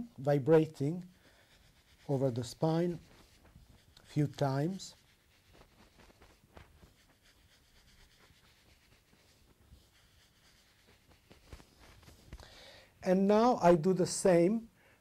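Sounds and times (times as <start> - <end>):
hands rubbing over clothing: 0.6 - 12.5.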